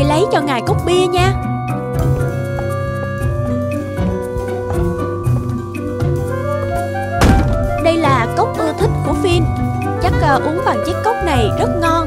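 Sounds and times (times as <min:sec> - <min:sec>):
background music: 0:00.0 - 0:12.0
cartoon heavy thunk: 0:07.2 - 0:08.1.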